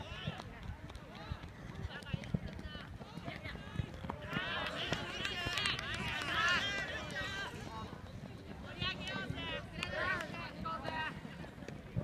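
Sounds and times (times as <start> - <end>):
players shouting: 4.3 - 7.7.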